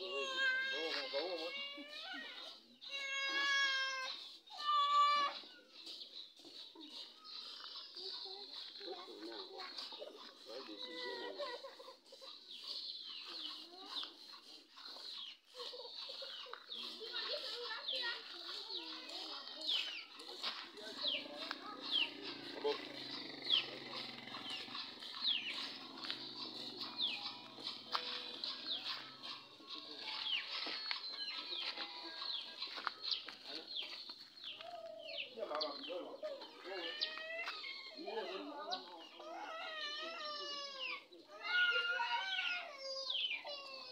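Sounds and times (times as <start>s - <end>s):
people's voices: 0.0s - 43.9s
bird chirping: 5.4s - 39.2s.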